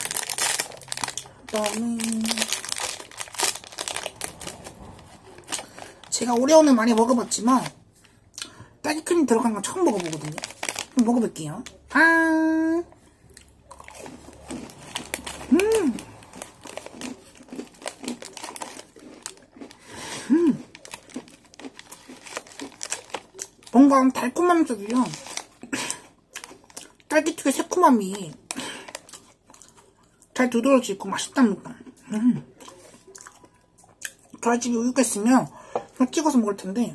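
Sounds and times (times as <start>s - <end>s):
plastic wrapper crinkling: 0.0s - 8.2s, 9.0s - 12.0s, 13.7s - 29.8s.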